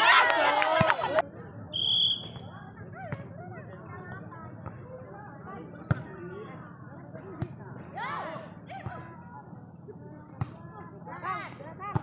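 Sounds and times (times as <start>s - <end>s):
spectators chatting and calling: 0.0s - 12.0s.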